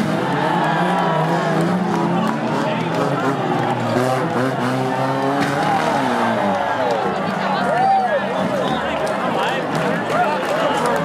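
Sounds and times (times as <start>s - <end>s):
car engines revving: 0.0s - 11.0s.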